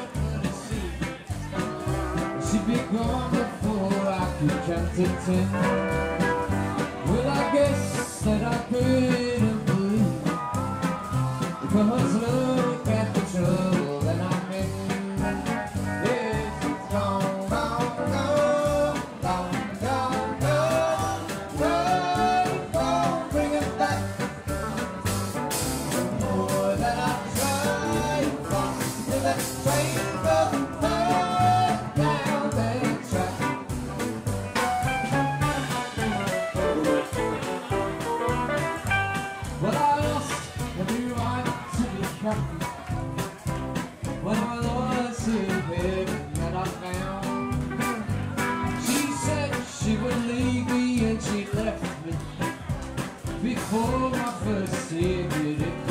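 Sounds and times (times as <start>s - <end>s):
western swing band playing: 0.0s - 55.9s.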